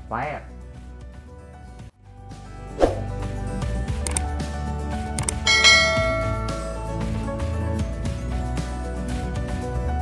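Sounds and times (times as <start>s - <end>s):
background music: 0.0s - 10.0s
click: 4.0s - 4.3s, 5.2s - 5.4s
bright bell chime: 5.4s - 7.2s.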